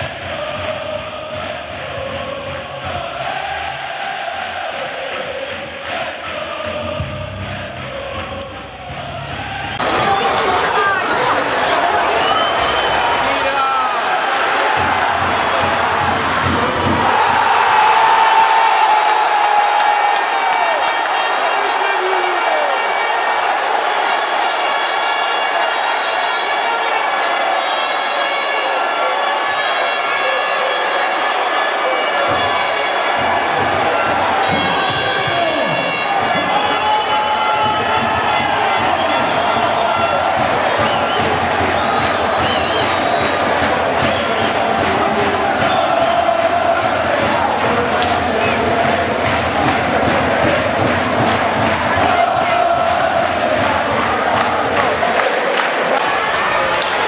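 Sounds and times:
crowd chanting: 0:00.0 - 0:57.0
crowd cheering: 0:00.0 - 0:57.0
horn-like drone: 0:22.7 - 0:40.2.

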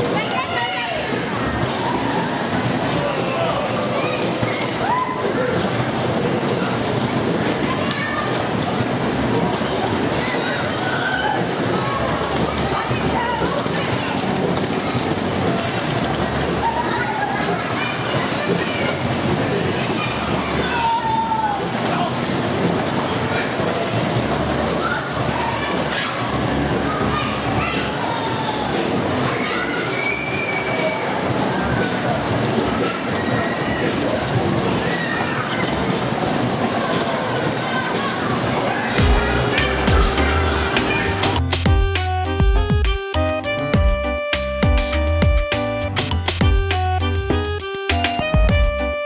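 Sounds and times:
dodgem cars rolling on steel floor: 0:00.0 - 0:49.0
dodgem cars rumbling on metal floor: 0:38.4 - 0:49.0.

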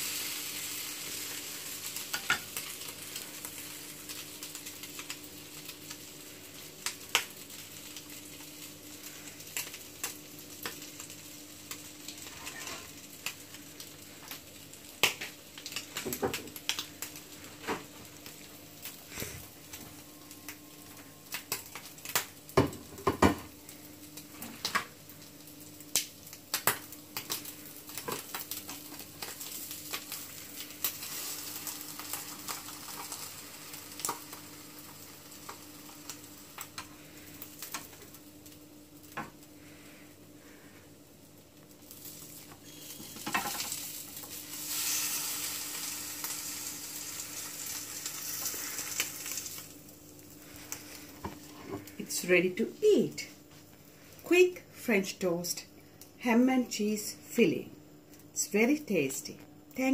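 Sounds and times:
french toast sizzling in a pan: 0:00.0 - 0:54.8.

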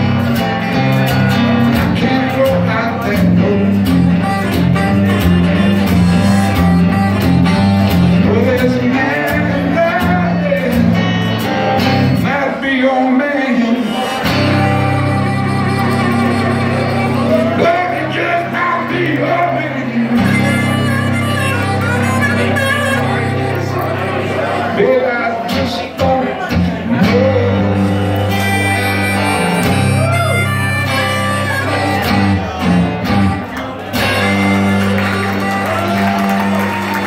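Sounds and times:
acoustic guitar blues riff: 0:00.0 - 0:37.0
harmonica sustained notes: 0:02.6 - 0:08.6, 0:13.7 - 0:18.5, 0:19.7 - 0:24.7, 0:27.3 - 0:37.0.

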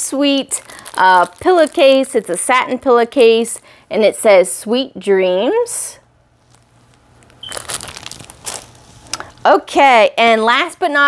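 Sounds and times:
plastic packaging crinkling: 0:00.3 - 0:02.7, 0:06.4 - 0:09.4.

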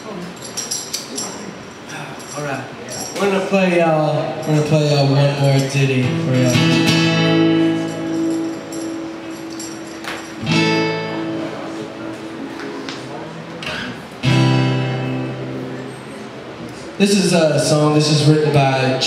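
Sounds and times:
acoustic guitar strumming chords: 0:05.6 - 0:16.3.

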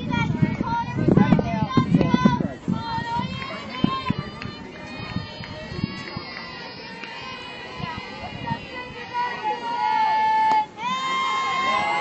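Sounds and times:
people calling out and chattering: 0:00.0 - 0:12.0.

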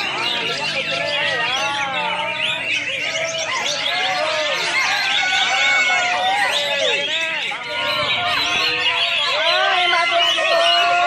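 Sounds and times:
caged birds singing whistled notes: 0:00.0 - 0:11.0.

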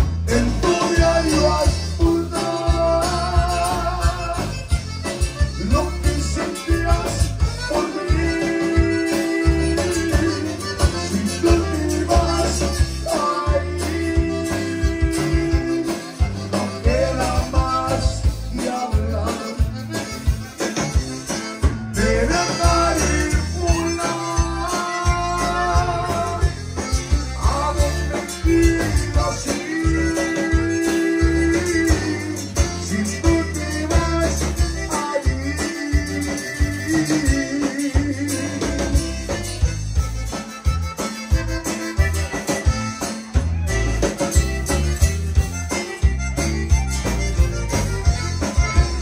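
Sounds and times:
button accordion melody: 0:00.0 - 0:49.0
electric bass: 0:00.0 - 0:49.0
guitar: 0:00.0 - 0:49.0
person singing: 0:00.3 - 0:04.7, 0:05.6 - 0:20.0, 0:21.8 - 0:39.4.

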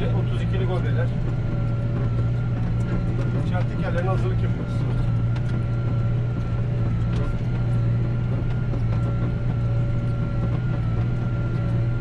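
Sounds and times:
thin steady whine: 0:00.0 - 0:12.0
tractor engine droning: 0:00.0 - 0:12.0.

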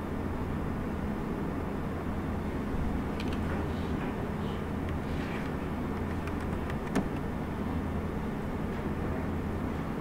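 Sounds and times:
room hum and hiss: 0:00.0 - 0:10.0.

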